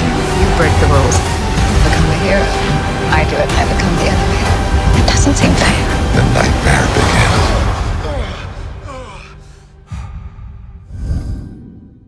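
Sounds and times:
orchestral trailer music: 0:00.0 - 0:12.0.

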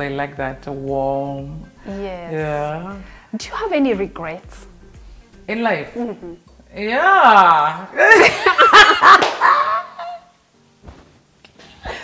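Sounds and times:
woman laughing loudly: 0:08.0 - 0:10.3
soft thump: 0:10.8 - 0:11.2.

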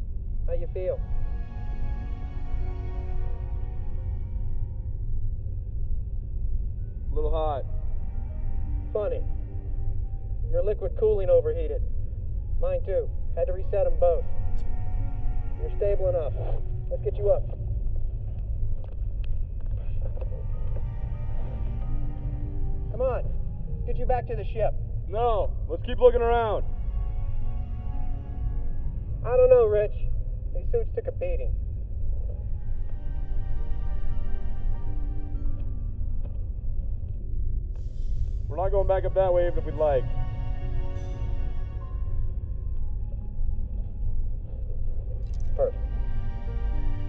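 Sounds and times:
deep sci-fi ambience rumble: 0:00.0 - 0:47.0.

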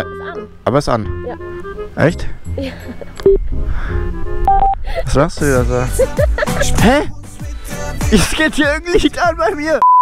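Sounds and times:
background music: 0:00.0 - 0:09.8
short electronic beeps: 0:04.4 - 0:04.8, 0:09.8 - 0:10.0.

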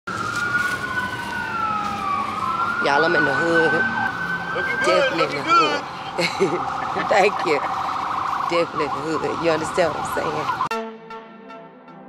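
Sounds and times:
emergency siren wailing: 0:00.1 - 0:10.7.

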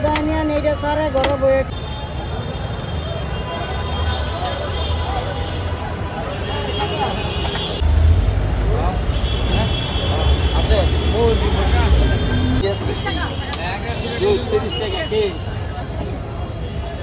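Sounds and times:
many people talking: 0:00.0 - 0:07.8, 0:08.6 - 0:17.0.

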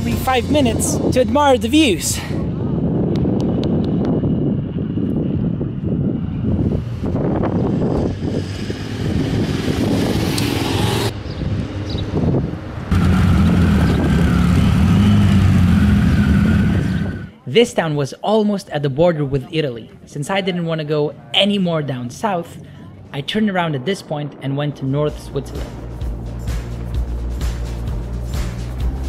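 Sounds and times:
motorcycle engines rumbling: 0:00.0 - 0:17.4.

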